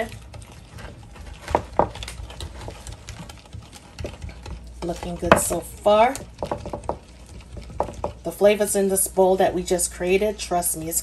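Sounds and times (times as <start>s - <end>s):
utensil stirring liquid in bowl: 0.0s - 11.0s.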